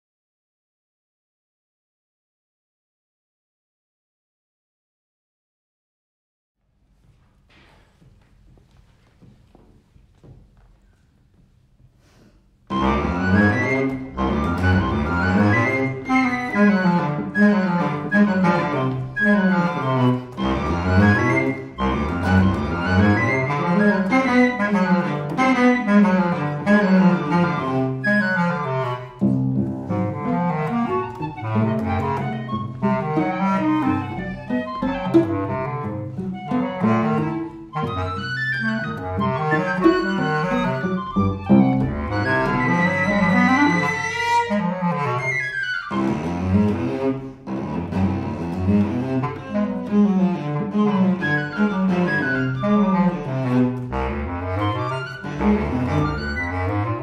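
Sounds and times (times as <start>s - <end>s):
bass clarinet: 12.6s - 57.0s
bowed cello: 12.6s - 57.0s
flute: 12.7s - 47.0s, 50.4s - 57.0s.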